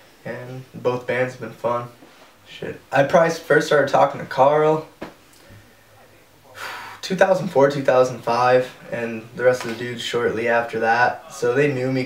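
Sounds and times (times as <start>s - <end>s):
faint room hum: 0.0s - 12.0s
man breathing in: 5.4s - 7.0s.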